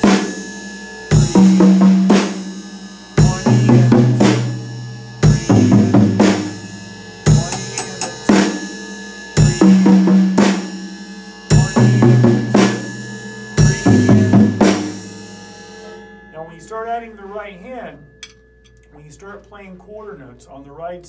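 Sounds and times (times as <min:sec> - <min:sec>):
hi-hat and toms: 0:00.0 - 0:15.2
ride cymbal: 0:02.3 - 0:09.7.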